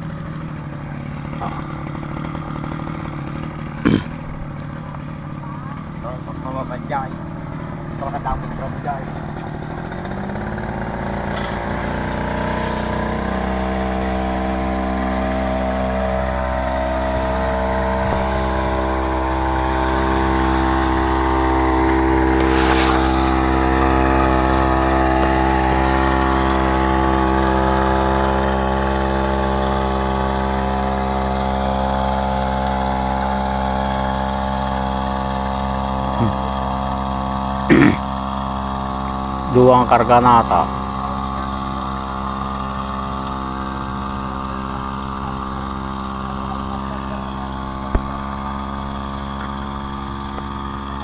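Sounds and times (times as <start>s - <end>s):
small gasoline engine running: 0.0s - 51.0s.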